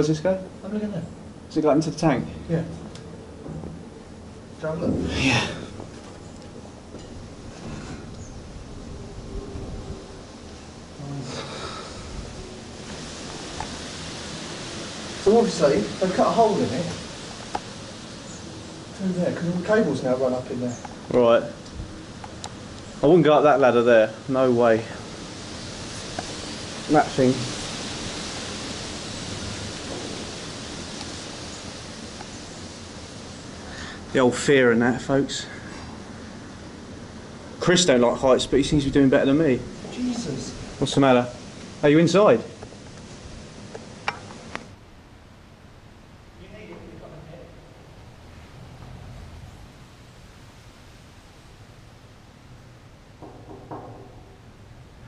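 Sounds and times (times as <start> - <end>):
outdoor ambience hiss: 0.0 - 55.0.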